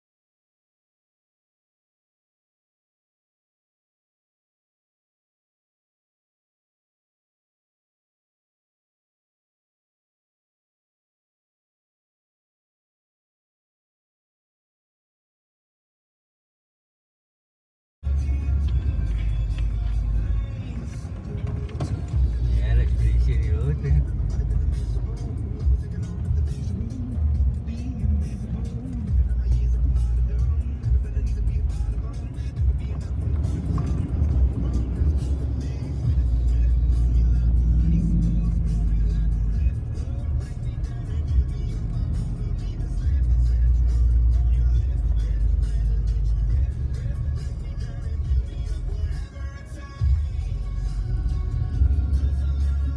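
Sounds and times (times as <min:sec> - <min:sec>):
music with voice: 0:18.0 - 0:52.9
pickup engine and tyres rumbling: 0:18.0 - 0:52.9.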